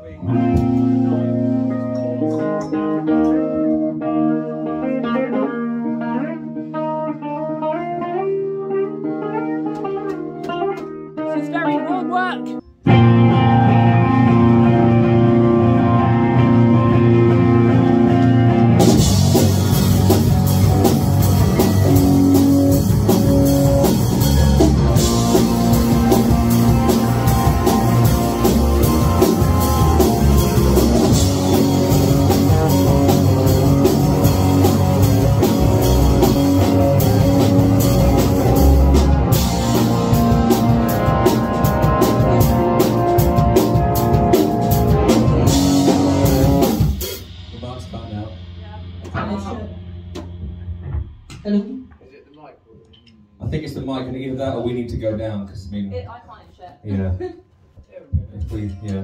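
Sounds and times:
drum kit: 0.0 - 12.1, 12.8 - 52.1
electric guitars: 0.0 - 51.4
bass guitar: 0.0 - 52.1.

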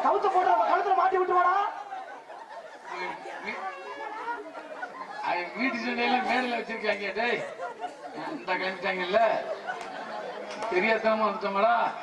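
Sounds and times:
voices talking over one another: 0.0 - 12.0.

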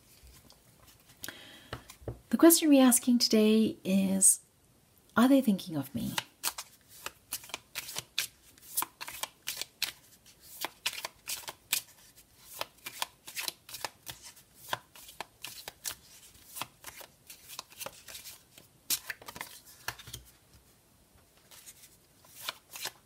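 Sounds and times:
cards being shuffled: 6.0 - 20.4, 21.4 - 23.0.

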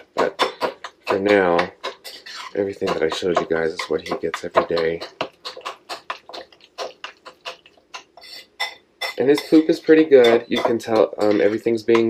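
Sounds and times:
food mashed in ceramic bowl: 0.0 - 12.0.

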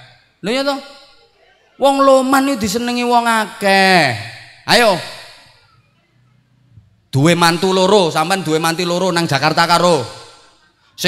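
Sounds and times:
man speaking into a microphone: 0.0 - 5.5, 7.1 - 11.0
faint room noise: 0.1 - 2.9, 5.0 - 7.3.

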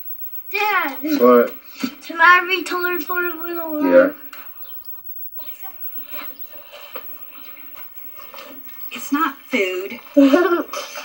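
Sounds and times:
muffled television voices: 0.0 - 11.0.

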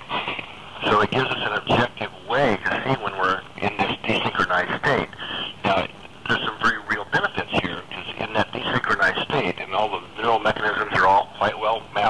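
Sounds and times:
man talking: 0.8 - 12.0.

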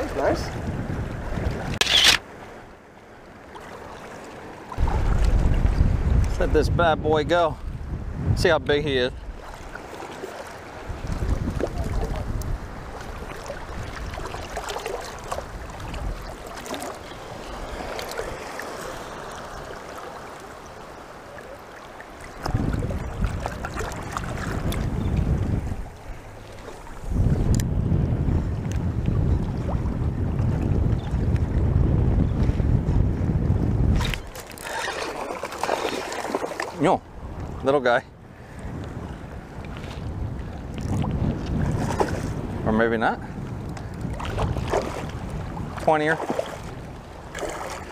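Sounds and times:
wind buffeting on microphone: 0.0 - 2.4, 4.7 - 19.8, 22.2 - 47.9
water sloshing and lapping: 0.0 - 6.4, 8.7 - 27.6, 33.6 - 42.7, 43.4 - 47.9.

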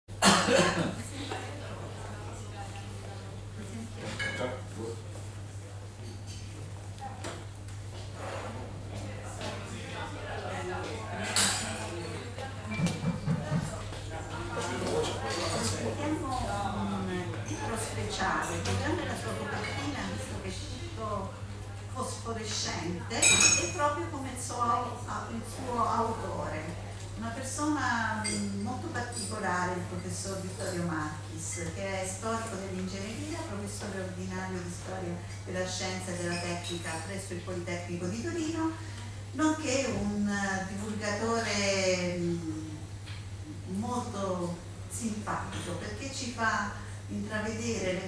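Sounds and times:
low electrical hum: 0.1 - 48.0
person coughing: 0.2 - 1.0
tableware clinking: 4.1 - 4.5, 23.2 - 23.8, 28.2 - 29.3
woman talking into a microphone: 15.4 - 42.9, 43.5 - 48.0.

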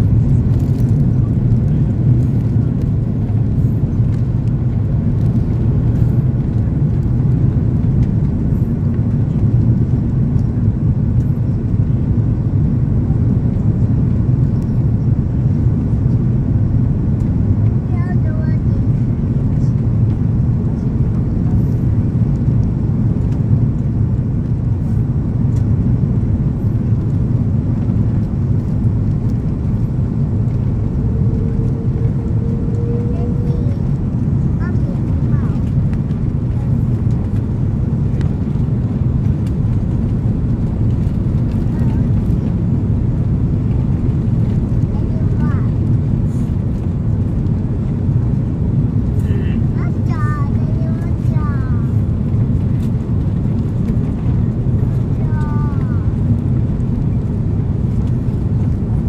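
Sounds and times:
aircraft cabin roar: 0.0 - 59.0.

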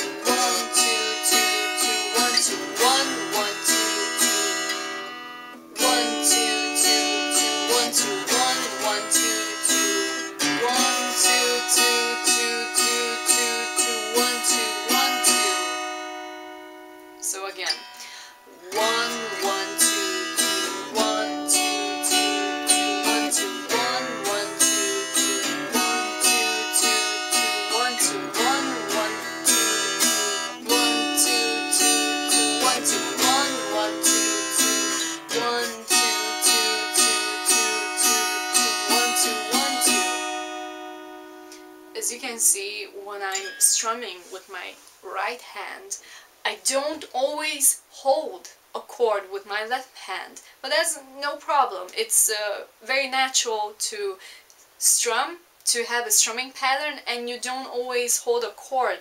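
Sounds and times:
acoustic guitar strumming: 0.0 - 45.8.

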